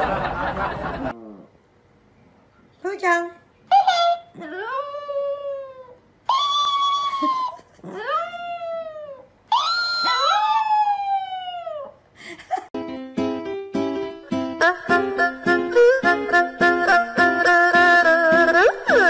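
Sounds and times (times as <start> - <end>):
dog howling: 4.4 - 11.9
dog yipping: 6.3 - 7.6, 9.1 - 11.9.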